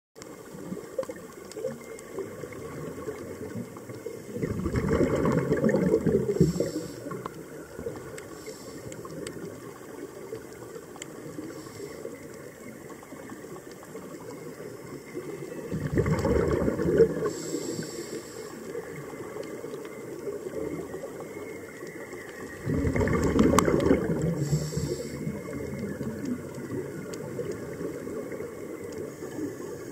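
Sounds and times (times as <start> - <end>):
faint clicks: 0.2 - 29.9
underwater ambience: 0.2 - 29.9
diver exhaling bubbles: 4.3 - 7.3, 15.7 - 18.2, 22.5 - 28.0.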